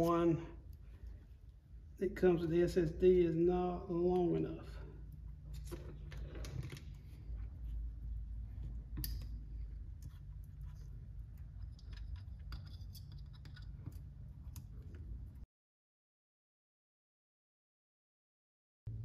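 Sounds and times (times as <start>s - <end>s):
low steady hum: 0.0s - 15.5s
small metal hardware clicks and scrapes: 11.4s - 15.0s.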